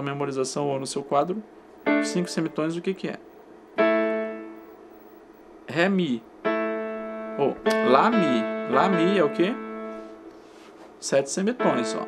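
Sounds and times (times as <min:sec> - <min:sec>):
electronic keyboard piano notes: 0:01.2 - 0:10.4, 0:11.1 - 0:12.0.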